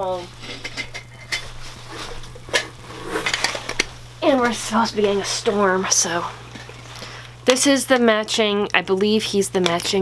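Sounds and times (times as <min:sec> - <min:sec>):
rustling near microphone: 0:00.1 - 0:06.8.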